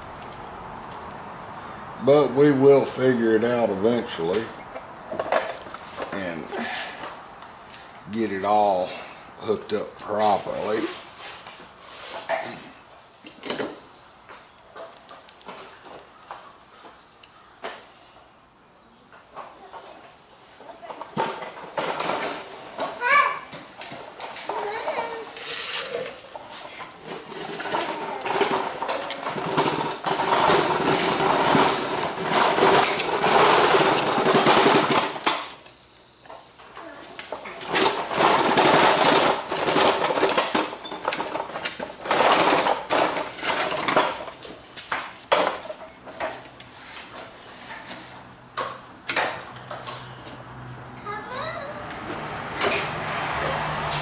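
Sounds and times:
high insect drone: 0.0s - 54.0s.

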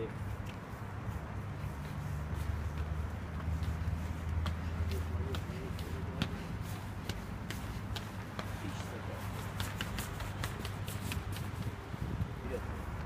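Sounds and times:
running footsteps on concrete steps: 0.1s - 13.0s.

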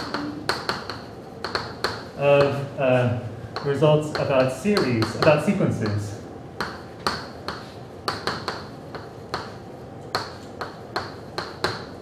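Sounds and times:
chalk clicking on blackboard: 0.1s - 2.6s, 6.6s - 11.9s.

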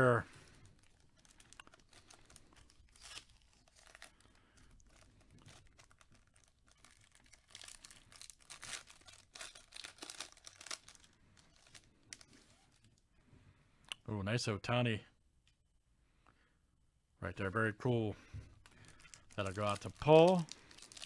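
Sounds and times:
foil wrapper crinkling and tearing: 0.0s - 12.9s, 18.6s - 21.0s.

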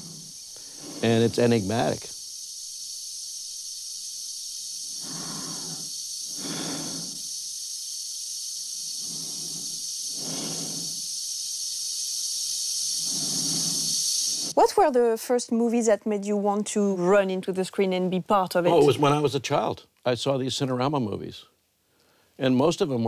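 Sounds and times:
slow breathing in a helmet: 0.0s - 1.1s, 5.0s - 7.3s, 9.0s - 11.1s, 13.0s - 14.5s
steady high air hiss: 0.0s - 14.6s.

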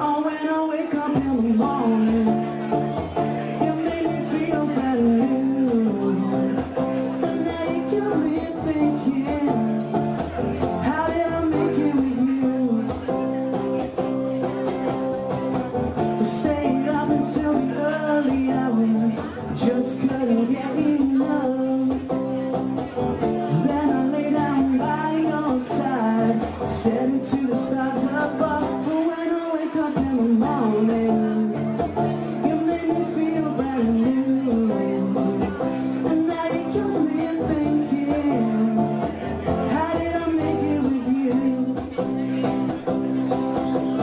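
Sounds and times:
man singing: 0.0s - 42.7s
acoustic guitar strumming: 0.0s - 44.0s.

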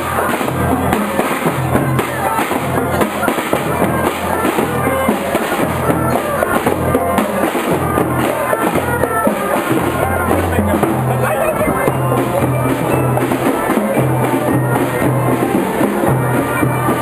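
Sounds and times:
drums beating: 0.0s - 17.0s
parade music: 0.0s - 17.0s.

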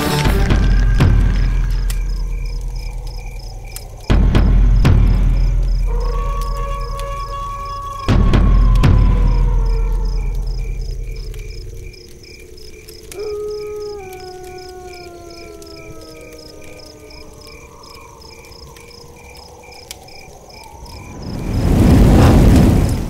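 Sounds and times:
cricket chirps: 0.0s - 23.0s
deep low boom: 0.3s - 6.0s.

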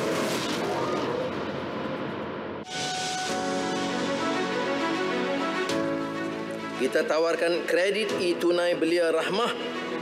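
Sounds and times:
noisy whoosh: 0.0s - 4.5s.

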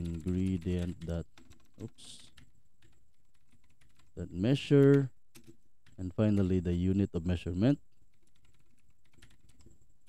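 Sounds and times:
computer keyboard typing: 0.0s - 7.1s, 8.1s - 9.8s.

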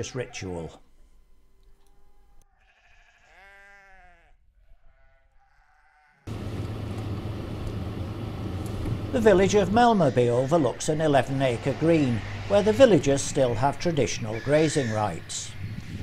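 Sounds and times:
sheep bleating: 2.4s - 6.3s
steady noise with low hum: 6.3s - 16.0s.

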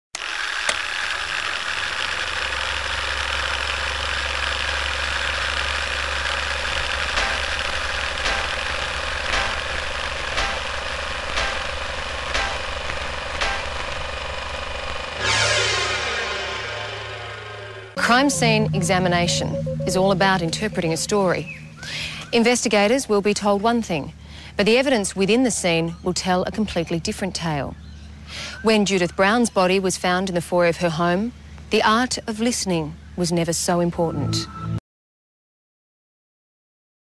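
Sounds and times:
film projector whirring: 0.2s - 18.0s
sharp ticks: 3.3s - 14.3s
ringing tone: 15.2s - 21.8s.

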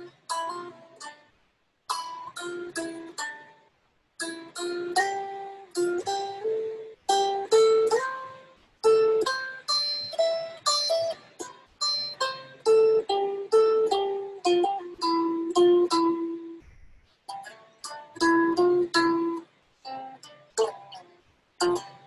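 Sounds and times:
electric guitar melodic riff: 4.2s - 16.6s, 17.4s - 22.0s.

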